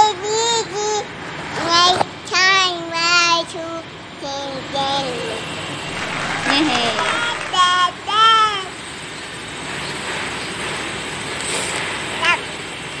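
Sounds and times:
street noise: 5.2 - 13.0.

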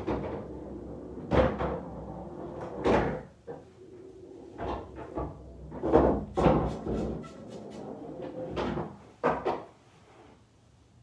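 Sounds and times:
pool table thuds: 0.0 - 3.6, 4.6 - 9.7.

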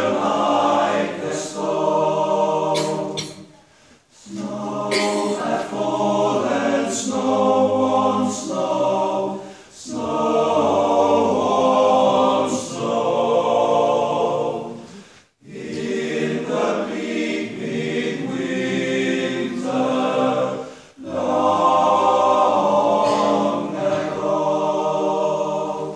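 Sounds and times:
male choir singing a cappella: 0.0 - 3.5, 4.1 - 25.9.

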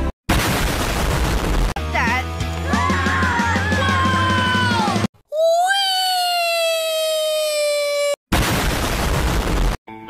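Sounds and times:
loud rough explosion: 8.3 - 9.8.

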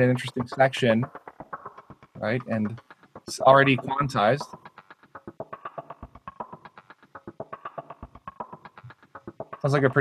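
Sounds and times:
chopped percussive hits: 0.0 - 10.0.

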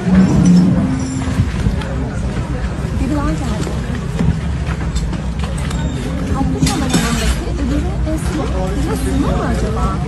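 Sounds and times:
low outdoor rumble: 0.0 - 8.8
people chattering: 0.0 - 10.0.

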